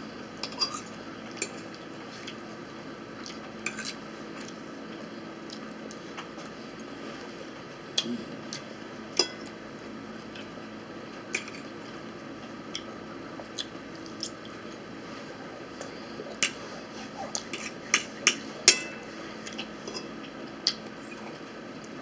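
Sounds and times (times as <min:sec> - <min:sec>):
fork scraping a plate: 0:16.4 - 0:19.1.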